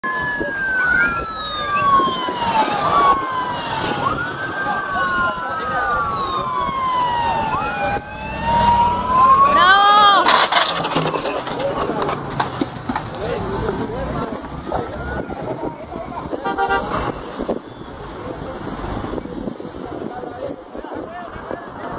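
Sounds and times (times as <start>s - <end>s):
sirens wailing: 0.0s - 11.6s, 13.5s - 19.9s.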